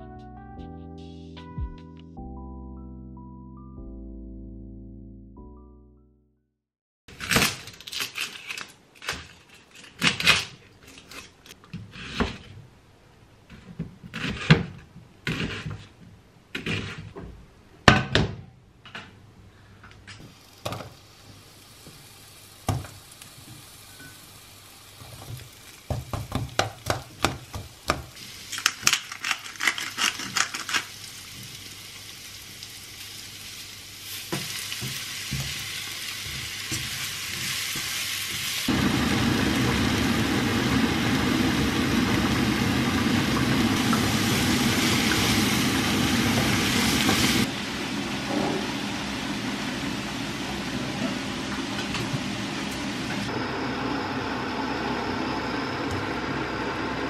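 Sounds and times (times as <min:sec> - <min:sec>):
onion sizzling in a wok: 0:20.1 - 0:57.0.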